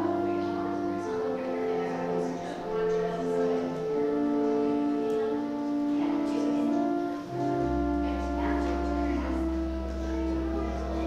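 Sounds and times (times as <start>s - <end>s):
church organ chords: 0.0s - 11.0s
deep organ pedal bass note: 0.0s - 11.0s.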